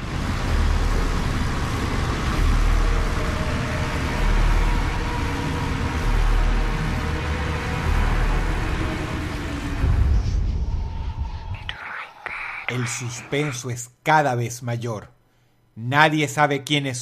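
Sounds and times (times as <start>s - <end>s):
deep throbbing low pulses: 0.0s - 13.3s
hissing rumble drone: 0.0s - 13.8s.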